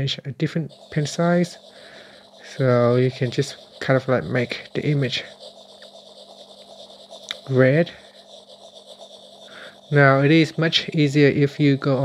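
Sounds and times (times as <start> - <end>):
steady low hum: 0.2 - 12.0
fingertip rubbing glass touchscreen: 0.5 - 12.0.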